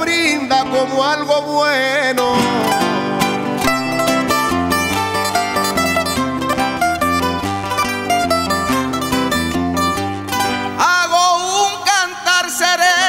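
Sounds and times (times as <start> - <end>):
guitars strumming: 0.0 - 13.0
double bass line: 2.2 - 10.8
lutes picking quick melody: 2.2 - 11.0.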